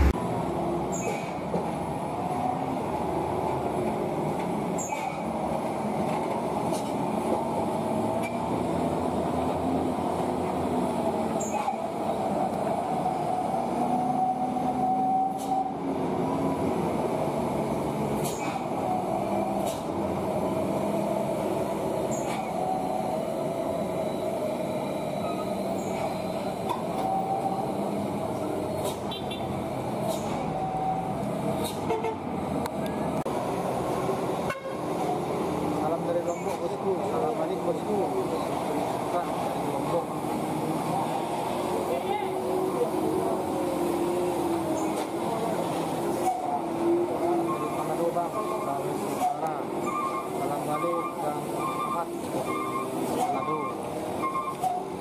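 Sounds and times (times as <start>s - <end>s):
diesel truck engines rumbling: 0.0s - 55.0s
people's voices: 35.2s - 55.0s.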